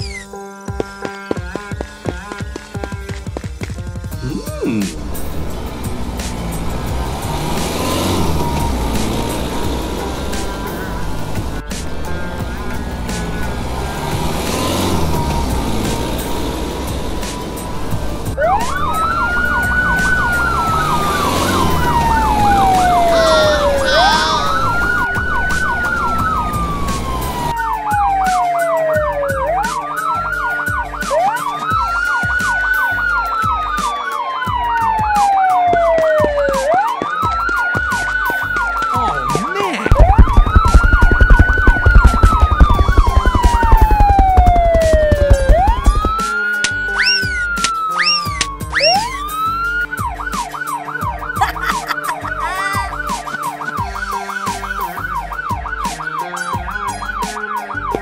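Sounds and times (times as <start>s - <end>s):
loud low throbbing: 4.2s - 27.5s, 39.9s - 46.2s
police siren wailing: 4.2s - 58.0s
siren yelp: 4.2s - 58.0s
car engine running: 4.8s - 27.5s, 39.9s - 46.3s.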